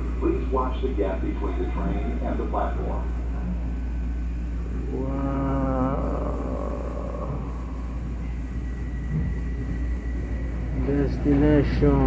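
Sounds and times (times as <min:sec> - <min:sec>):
thin high whine: 0:00.0 - 0:12.0
train rumbling: 0:00.0 - 0:12.0.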